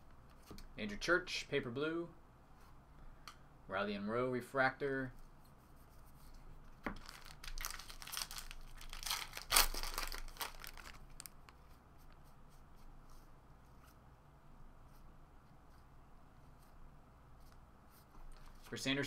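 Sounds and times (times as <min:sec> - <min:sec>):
foil wrapper tearing and crinkling: 0:07.0 - 0:11.4.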